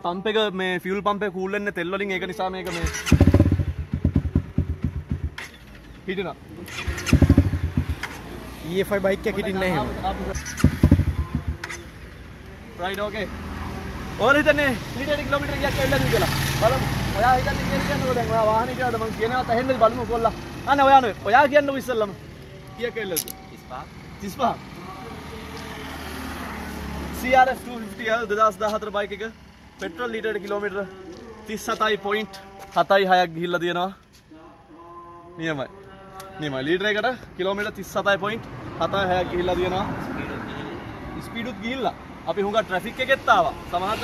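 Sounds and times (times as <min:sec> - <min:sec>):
motorcycle engine starting: 0:02.6 - 0:08.4, 0:10.2 - 0:12.4
vehicle passing: 0:02.7 - 0:32.6, 0:37.2 - 0:44.0.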